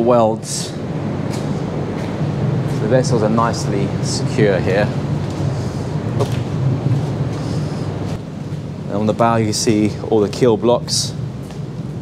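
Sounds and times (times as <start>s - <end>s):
low machinery drone: 0.0s - 12.0s.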